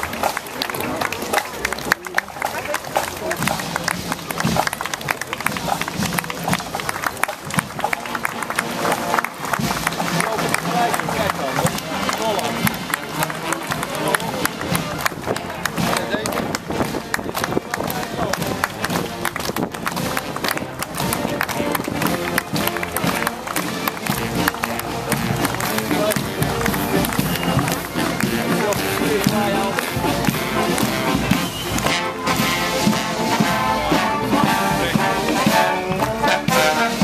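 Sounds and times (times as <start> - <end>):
crowd chatter: 0.0 - 37.0
marching band playing: 0.0 - 37.0
marching footsteps: 0.0 - 37.0
spectators clapping: 0.0 - 37.0
spectators talking: 0.0 - 37.0.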